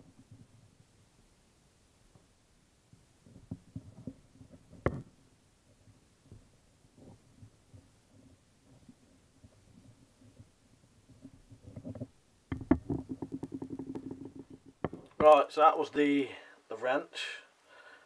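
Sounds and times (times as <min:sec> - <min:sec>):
wrench taps and scrapes: 0:11.1 - 0:15.4.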